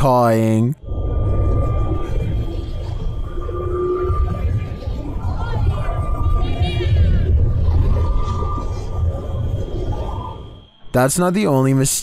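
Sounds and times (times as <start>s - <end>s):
heavy low rumble: 0.8s - 11.4s
faint wavering high tones: 0.8s - 12.0s.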